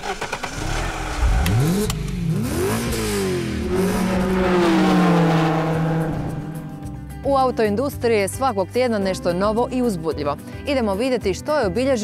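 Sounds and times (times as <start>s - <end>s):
car engine revving: 0.0s - 7.3s.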